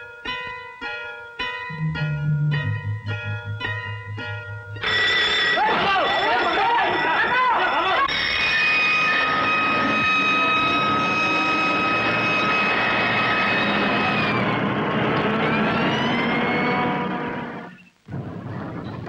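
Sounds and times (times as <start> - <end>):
police siren rising and falling: 1.7 - 6.4, 8.1 - 17.6
alarm high tone: 1.7 - 10.1.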